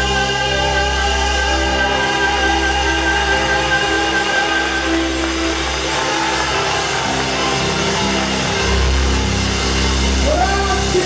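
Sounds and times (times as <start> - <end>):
live band playing chords: 0.0 - 11.0.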